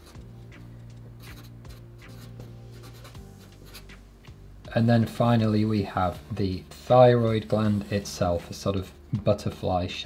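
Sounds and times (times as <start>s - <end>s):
marker writing on paper: 0.0s - 4.0s
quiet background music: 0.0s - 10.0s.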